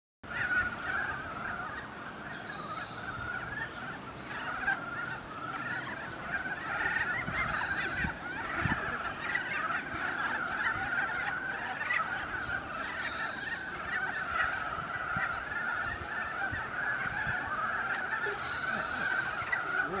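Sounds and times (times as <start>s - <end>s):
frog chorus: 0.2s - 20.0s.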